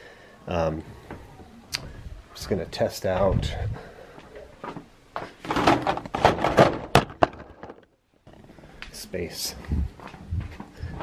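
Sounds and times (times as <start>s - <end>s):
metal drawer rattling: 5.4s - 7.0s.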